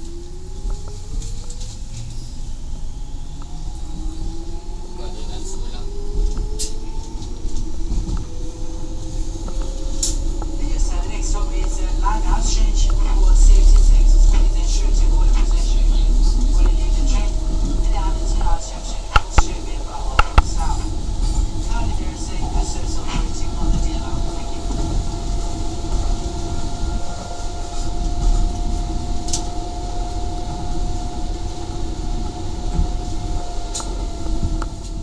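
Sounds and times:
electric train motor whine: 0.0s - 35.0s
wheels rumbling on track: 0.0s - 35.0s.

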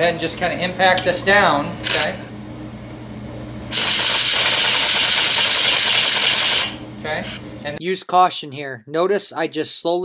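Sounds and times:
pneumatic impact tool hissing: 3.7s - 6.8s.

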